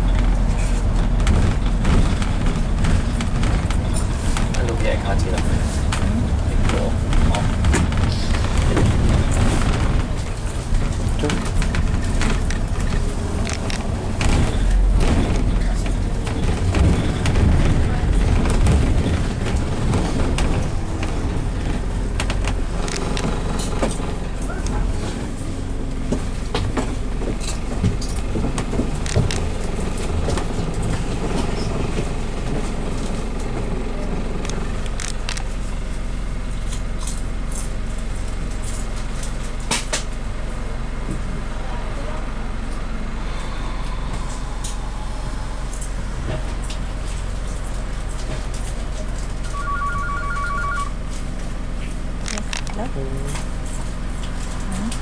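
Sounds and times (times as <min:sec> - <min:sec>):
bodywork rattles and clicks: 0:00.0 - 0:40.3, 0:51.8 - 0:55.0
bus engine running: 0:00.0 - 0:55.0
road noise: 0:00.0 - 0:55.0.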